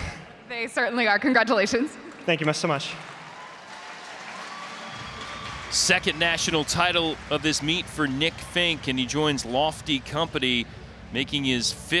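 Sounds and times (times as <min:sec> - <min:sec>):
spectators applauding: 0:02.1 - 0:10.6.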